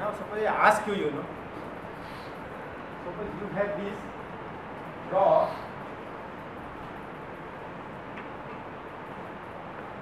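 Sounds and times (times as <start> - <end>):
classroom room noise hiss: 0.0 - 10.0.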